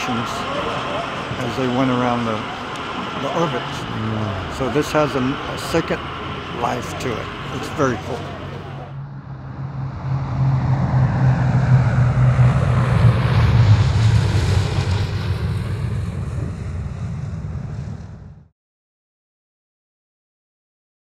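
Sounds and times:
propeller airplane flying past: 0.0 - 18.5.

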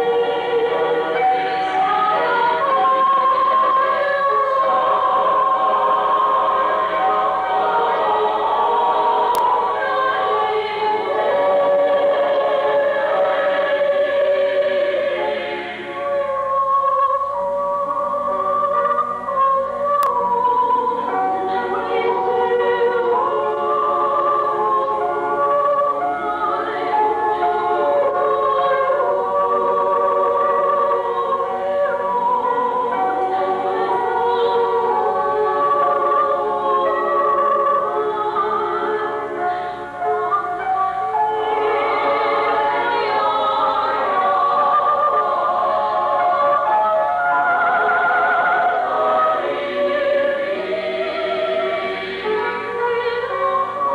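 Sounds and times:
mixed choir singing in harmony: 0.0 - 53.9.

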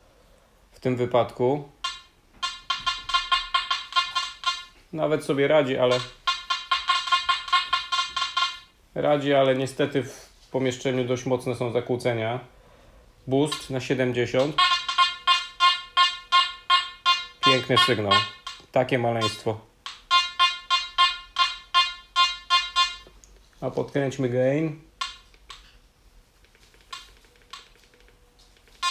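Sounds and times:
metal detector beeping: 1.8 - 4.8, 5.4 - 8.7, 13.4 - 23.2, 25.0 - 25.7, 26.6 - 28.9.

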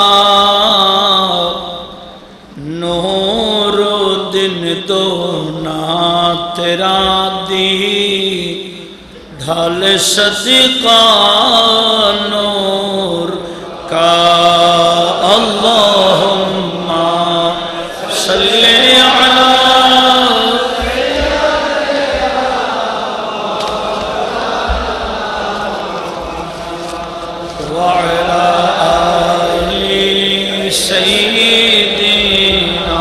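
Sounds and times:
man chanting: 0.0 - 22.3, 24.7 - 33.0.

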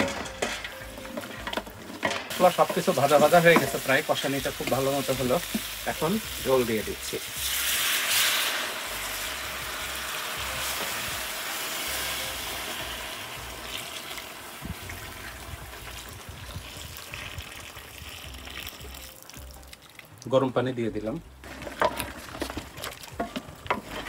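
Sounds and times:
hiss of water on hot pot: 2.3 - 19.0
water pouring into hot pot: 2.3 - 20.3.

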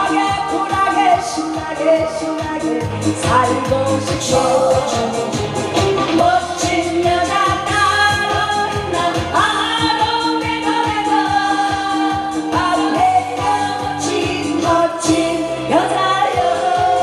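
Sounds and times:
amplified backing track with beat: 0.0 - 17.0
woman singing into a microphone: 0.0 - 17.0.

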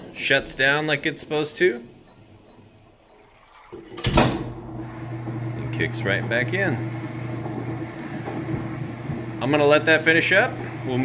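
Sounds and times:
washing machine motor humming: 0.0 - 11.0.

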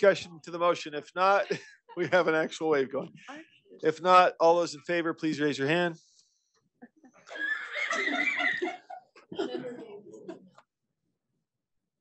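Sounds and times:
people talking: 0.0 - 6.0, 9.4 - 10.5
people laughing: 1.2 - 3.1, 7.3 - 10.5.

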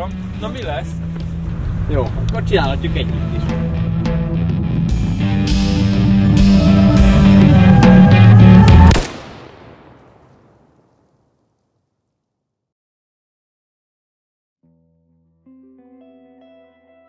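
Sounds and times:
film score music with a beat: 3.1 - 9.0
sharp crack: 8.7 - 11.7.

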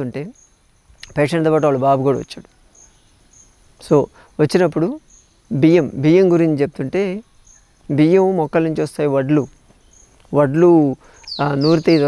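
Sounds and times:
man speaking: 0.0 - 0.4, 1.0 - 2.5, 3.8 - 7.2, 7.9 - 9.5, 10.3 - 12.0
high-pitched insect trill: 0.0 - 12.0.

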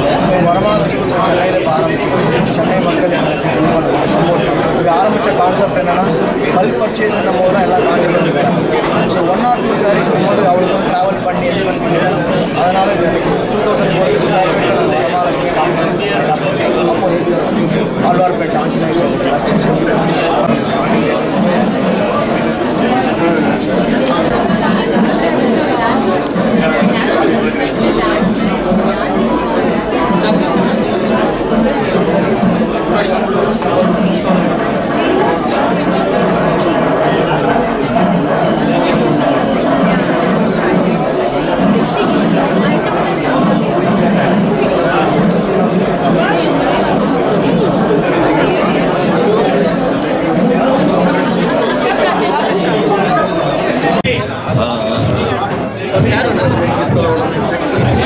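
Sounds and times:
babble of overlapping conversation: 0.0 - 58.0
people talking over one another: 0.0 - 58.0.

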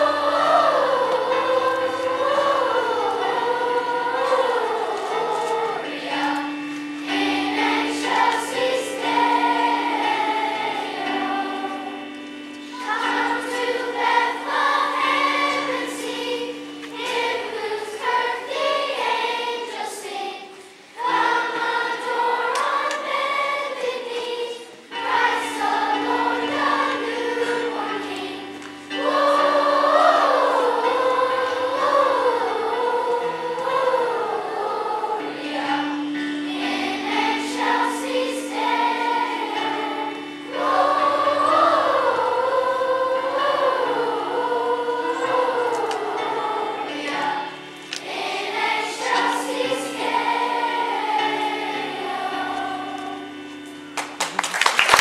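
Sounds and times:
children's choir singing: 0.0 - 55.0
held low accompanying notes: 0.0 - 55.0.

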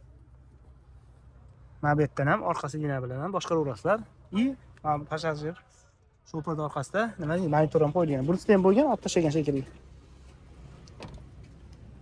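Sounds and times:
car door shutting: 10.6 - 11.6.

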